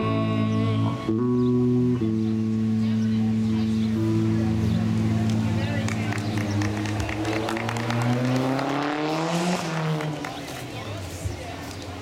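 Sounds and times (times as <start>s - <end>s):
engine revving up: 4.6s - 10.5s
scattered claps: 5.2s - 11.0s.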